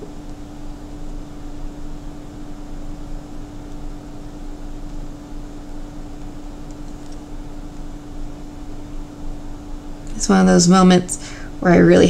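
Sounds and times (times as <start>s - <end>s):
low machine-like room hum: 0.0s - 12.0s.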